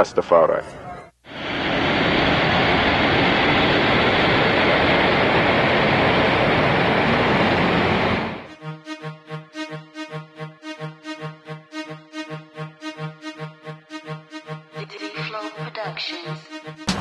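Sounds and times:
jet airliner engines: 0:01.3 - 0:08.6
music with a steady beat: 0:08.5 - 0:17.0.

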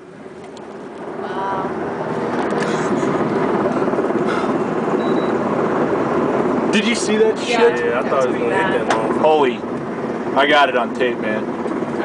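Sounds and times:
helicopter passing low overhead: 0:00.0 - 0:12.0.

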